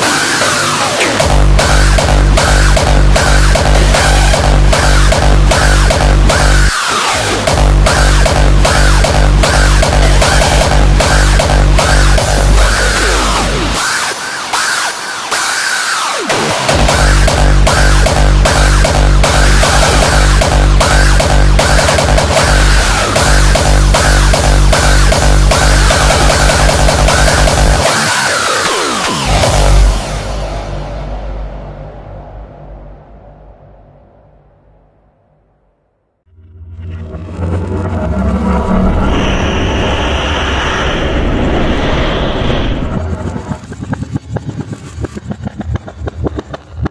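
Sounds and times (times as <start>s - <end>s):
distorted siren-like synth lead: 0.0s - 30.9s, 36.3s - 46.9s
low drone: 0.0s - 46.9s.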